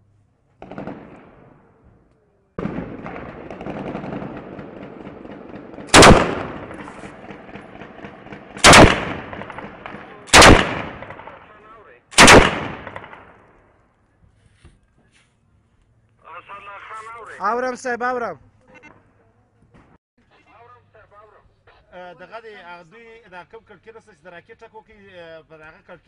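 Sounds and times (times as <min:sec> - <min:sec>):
loud echoing bangs: 0:00.6 - 0:01.6, 0:02.6 - 0:11.5, 0:12.2 - 0:13.4
gunfire crackle: 0:00.6 - 0:01.7, 0:02.6 - 0:13.6.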